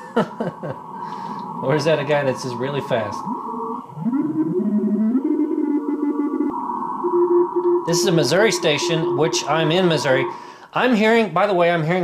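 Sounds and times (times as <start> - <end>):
steady tone: 0.0 - 12.0
morse code tones: 4.0 - 10.7
radio band noise: 6.5 - 12.0.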